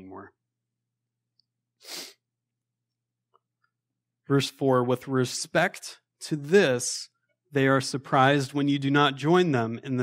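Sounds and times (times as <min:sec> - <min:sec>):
person sneezing: 0:01.8 - 0:02.2.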